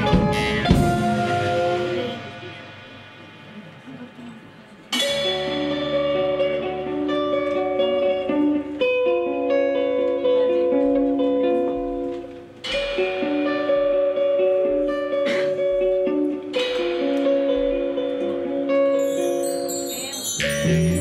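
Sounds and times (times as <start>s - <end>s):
live band playing a song: 0.0s - 4.3s, 4.9s - 21.0s
electric guitar: 0.0s - 21.0s.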